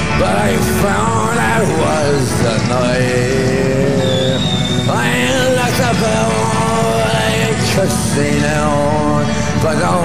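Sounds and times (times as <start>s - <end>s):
folk-rock band playing: 0.0s - 10.0s.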